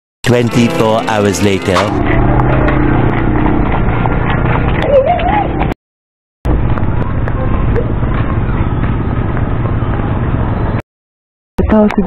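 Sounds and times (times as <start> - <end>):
steady low rumble: 0.3 - 5.7, 6.5 - 10.8.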